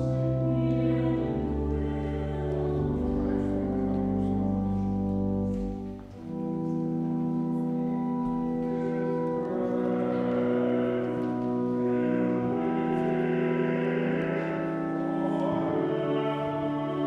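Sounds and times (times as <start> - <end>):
church organ playing chords: 0.0 - 17.0.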